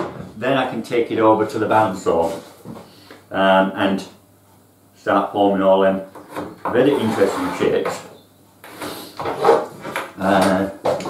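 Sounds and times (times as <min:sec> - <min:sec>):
metal straightedge scraping plywood: 0:06.2 - 0:08.0, 0:08.7 - 0:10.0.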